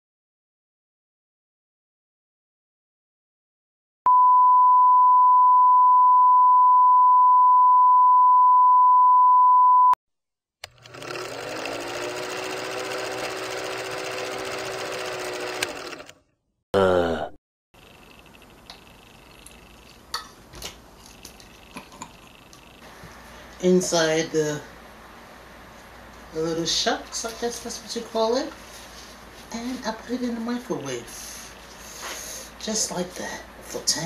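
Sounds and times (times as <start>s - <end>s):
small clicks: 10.6s - 11.0s
film projector whirring: 10.6s - 16.2s, 17.8s - 19.8s.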